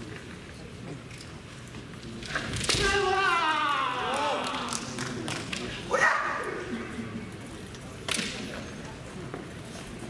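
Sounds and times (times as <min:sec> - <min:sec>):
person shouting: 0:02.8 - 0:04.7.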